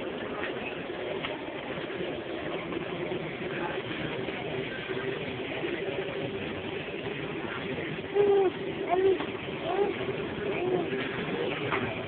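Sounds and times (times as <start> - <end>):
store hum and hubbub: 0.0 - 12.0.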